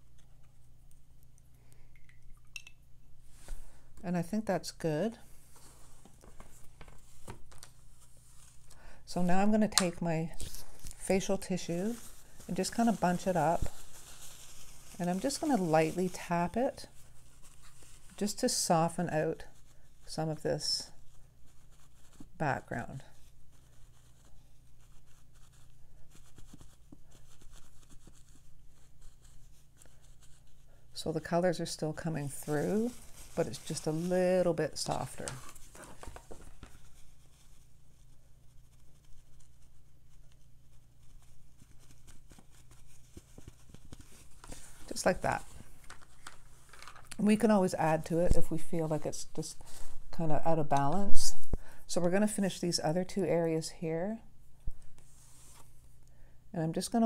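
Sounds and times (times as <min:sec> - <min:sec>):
tissue dabbing on wet paper: 0:03.2 - 0:53.6, 0:54.8 - 0:56.0.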